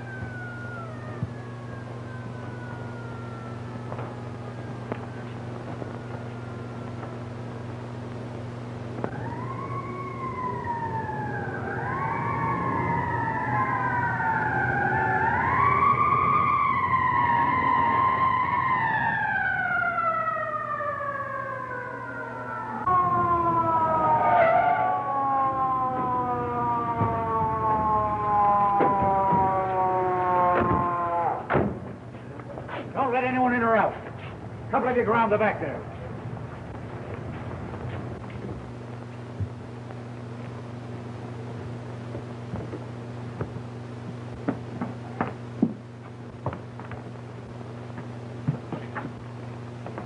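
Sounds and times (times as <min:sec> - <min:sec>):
police sirens wailing: 0:00.0 - 0:50.0.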